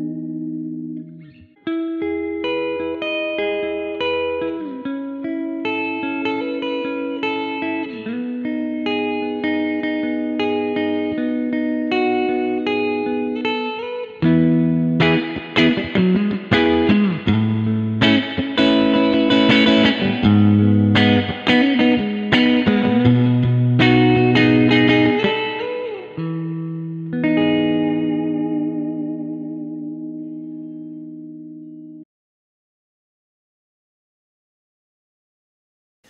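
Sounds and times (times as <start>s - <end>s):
electric guitar arpeggiated chords: 0.0s - 32.0s.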